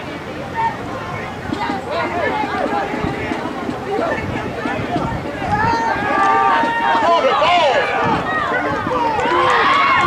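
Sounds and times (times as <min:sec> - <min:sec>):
crowd yelling and cheering: 0:00.0 - 0:10.0.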